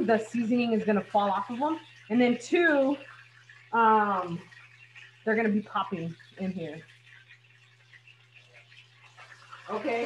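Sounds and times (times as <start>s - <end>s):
food frying in hot oil: 0.0s - 10.0s.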